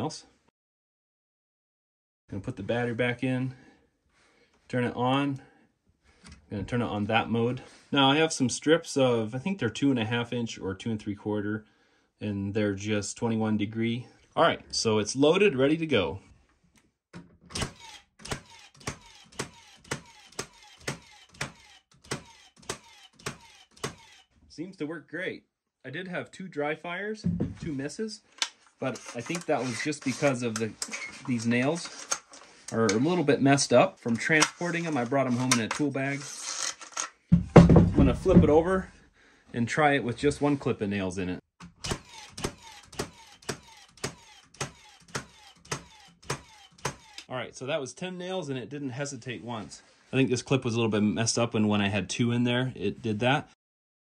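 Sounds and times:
nail gun firing: 0:17.5 - 0:24.3, 0:41.6 - 0:47.3.

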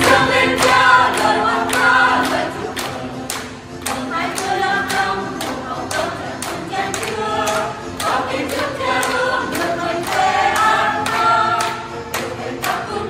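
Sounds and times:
hands clapping on the beat: 0:00.0 - 0:13.0
mixed choir singing: 0:00.0 - 0:13.0.

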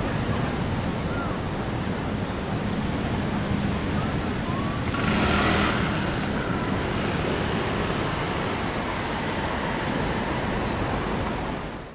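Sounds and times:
road traffic noise: 0:00.0 - 0:11.9.

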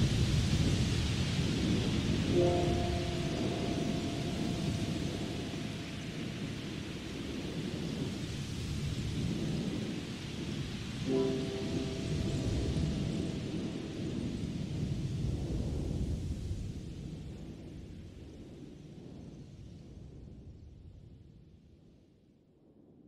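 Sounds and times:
steady rain: 0:00.0 - 0:19.2
ambient music chords: 0:02.2 - 0:06.8, 0:11.0 - 0:14.0.

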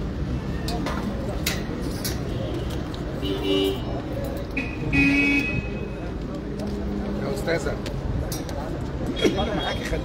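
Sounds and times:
crowd noise: 0:00.0 - 0:10.0
street noise: 0:00.0 - 0:10.0.

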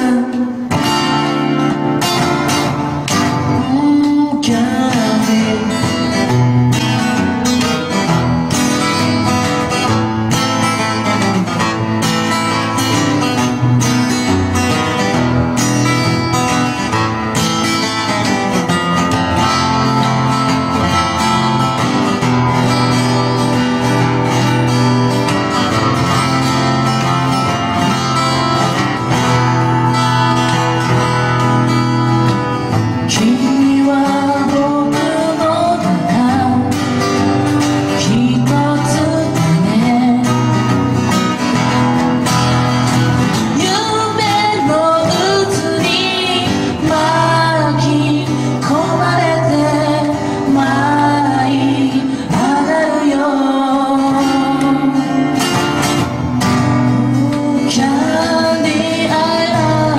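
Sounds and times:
person singing: 0:00.0 - 0:02.2, 0:03.1 - 0:07.9, 0:32.8 - 0:41.0, 0:43.3 - 0:55.8, 0:56.5 - 0:59.9
acoustic guitars strumming chords: 0:00.0 - 0:59.9.

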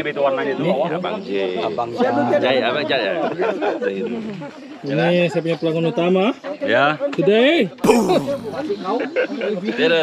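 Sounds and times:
men talking in a group: 0:00.0 - 0:10.0.

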